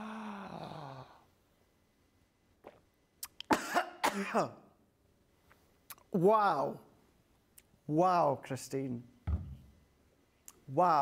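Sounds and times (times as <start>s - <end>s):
man coughing: 3.5s - 4.7s.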